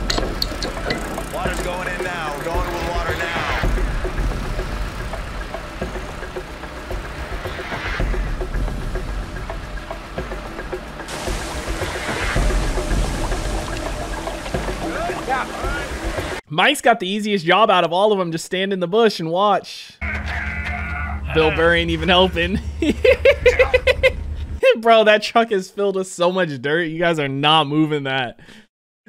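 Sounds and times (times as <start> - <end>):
tense music score: 0.0 - 16.4
low rumble: 0.8 - 16.4
dialogue: 1.0 - 3.8, 14.5 - 16.4, 20.0 - 22.6.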